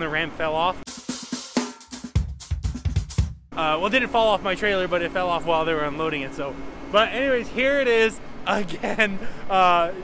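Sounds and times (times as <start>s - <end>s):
bass drum and snare hits: 0.9s - 3.5s.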